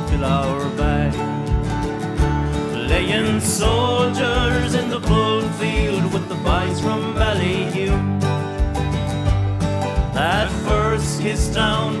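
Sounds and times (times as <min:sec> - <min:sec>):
man singing: 0:00.0 - 0:01.5, 0:02.5 - 0:08.4, 0:10.1 - 0:12.0
acoustic guitars: 0:00.0 - 0:12.0
keyboard keeping a steady beat: 0:00.0 - 0:12.0.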